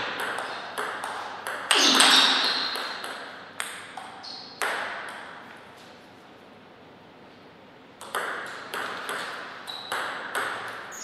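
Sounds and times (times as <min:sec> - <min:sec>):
table tennis ball clicking: 0:08.0 - 0:10.8.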